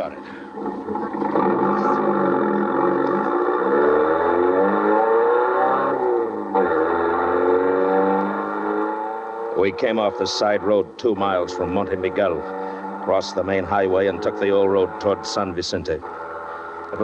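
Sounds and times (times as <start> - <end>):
sports car engine revving: 0.0 - 17.0.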